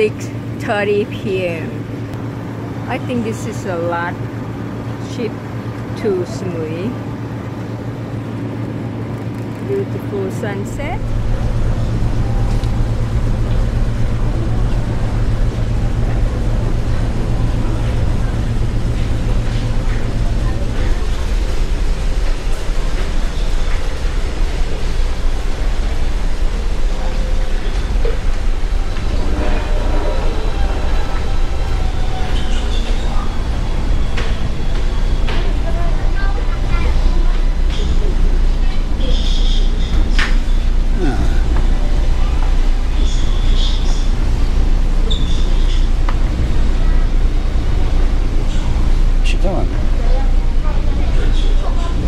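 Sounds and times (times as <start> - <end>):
ship engines droning: 0.0 - 52.0.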